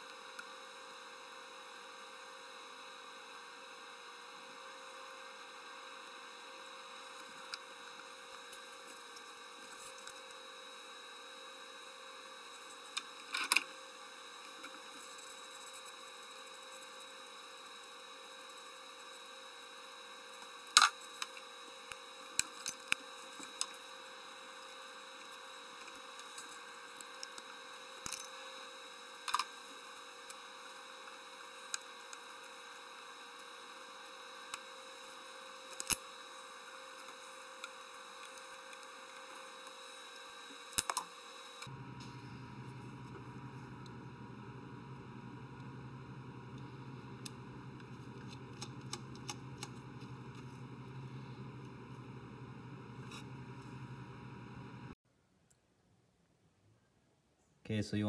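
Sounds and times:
faint hum and hiss: 0:00.0 - 0:58.0.

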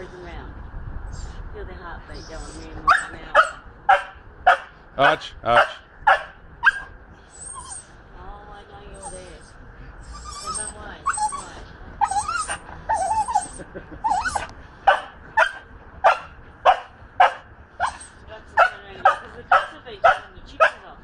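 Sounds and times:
dog whining: 0:02.2 - 0:03.2, 0:06.6 - 0:07.9, 0:09.0 - 0:14.5, 0:17.8 - 0:18.2
dog yipping: 0:02.2 - 0:04.7, 0:05.6 - 0:07.9, 0:10.0 - 0:20.8.

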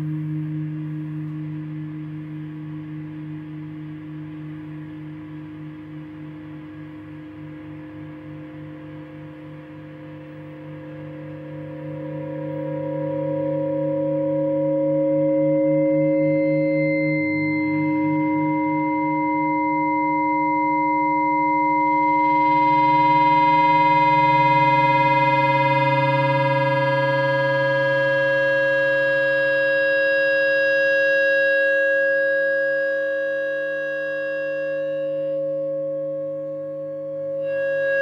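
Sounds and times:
electric guitar feedback drone: 0:00.0 - 0:38.0.

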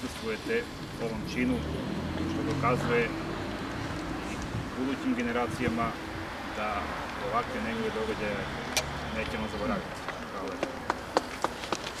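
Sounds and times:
sparse hand clapping: 0:10.4 - 0:11.9.

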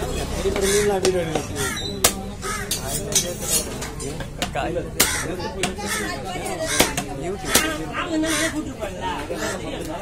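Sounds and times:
crows cawing: 0:00.5 - 0:03.0, 0:05.0 - 0:09.8
cleaver chopping on wooden block: 0:04.4 - 0:05.8, 0:06.7 - 0:07.8.

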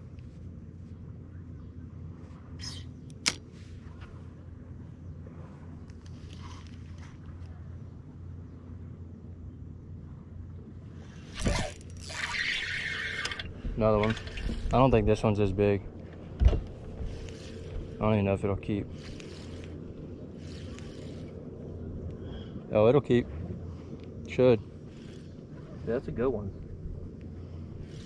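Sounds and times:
electric motor humming: 0:16.1 - 0:22.2, 0:24.6 - 0:28.0.

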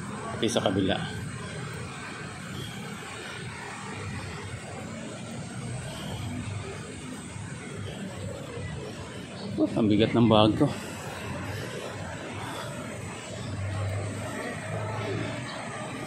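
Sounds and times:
city street low rumble: 0:00.0 - 0:16.0.

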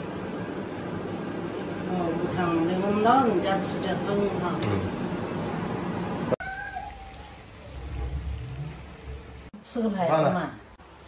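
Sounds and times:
cat meowing: 0:06.4 - 0:07.5.

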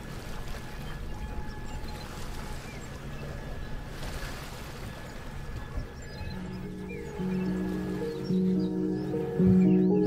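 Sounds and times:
boat engine rumble: 0:00.0 - 0:10.0
water noise: 0:00.0 - 0:10.0
soft lofi music: 0:06.4 - 0:10.0.

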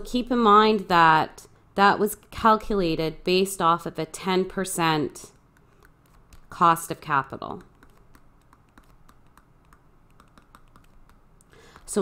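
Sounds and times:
stylus tapping on drawing tablet: 0:05.3 - 0:12.0.

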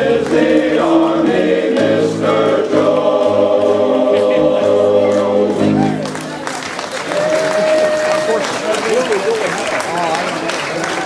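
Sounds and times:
men's chorus singing unaccompanied: 0:00.0 - 0:05.8.

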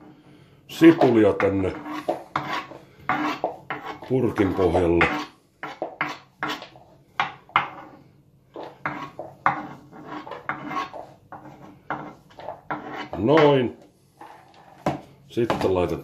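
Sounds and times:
spoon scraping on wooden board: 0:00.8 - 0:15.0.

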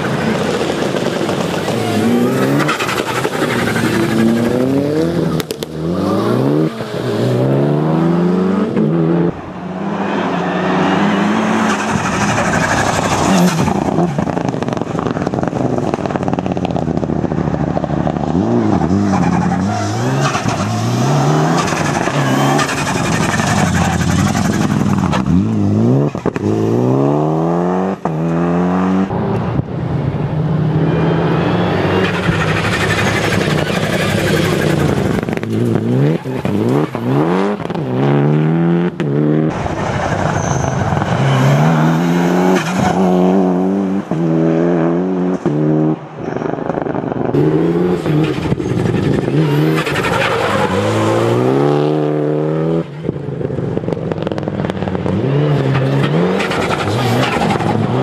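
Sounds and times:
rally car engine revving: 0:00.0 - 0:29.4, 0:30.9 - 0:58.0.

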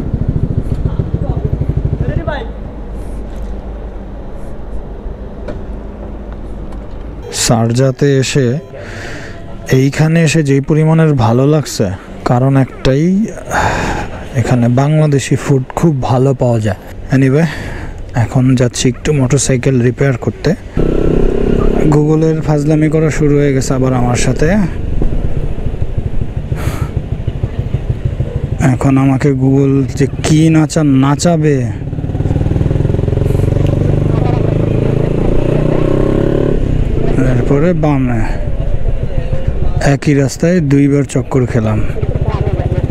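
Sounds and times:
motorcycle engine running: 0:00.0 - 0:02.6, 0:20.8 - 0:23.6, 0:24.8 - 0:30.6, 0:31.5 - 0:37.4, 0:41.8 - 0:42.9
man speaking: 0:07.2 - 0:09.1, 0:21.3 - 0:24.7
loud breathy rush of air: 0:08.8 - 0:09.6, 0:13.5 - 0:14.3, 0:17.4 - 0:18.1, 0:26.5 - 0:27.0.

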